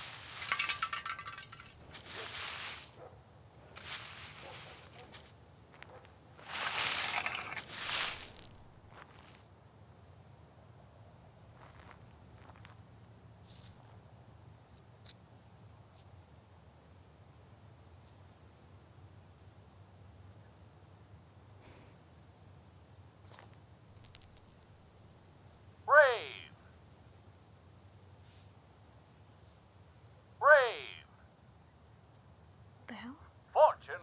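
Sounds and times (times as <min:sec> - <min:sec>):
metal coin clinking: 0:00.0 - 0:02.9, 0:06.5 - 0:08.8, 0:24.0 - 0:24.8
broom sweeping gravel: 0:00.0 - 0:03.0, 0:03.7 - 0:05.3, 0:06.4 - 0:09.4
faint scrapes: 0:00.0 - 0:03.0, 0:03.7 - 0:05.3, 0:06.4 - 0:09.2
small metal object ringing: 0:24.0 - 0:24.8.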